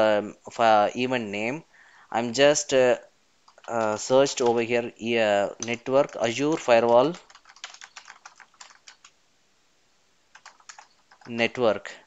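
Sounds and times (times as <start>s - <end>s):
computer keyboard typing: 3.5s - 4.8s, 5.6s - 9.2s, 10.3s - 11.5s.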